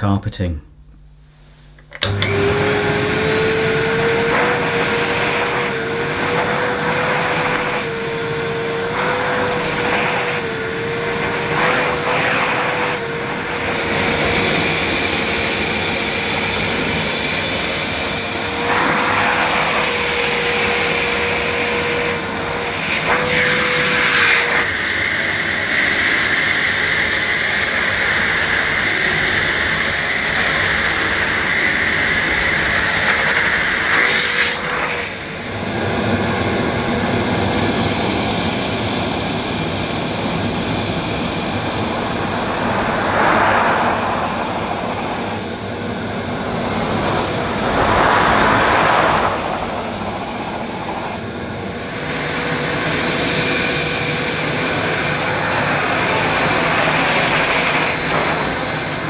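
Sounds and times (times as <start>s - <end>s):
vacuum cleaner motor humming: 1.7s - 59.0s
vacuum nozzle on carpet: 1.8s - 59.0s
high airy hiss: 38.2s - 59.0s.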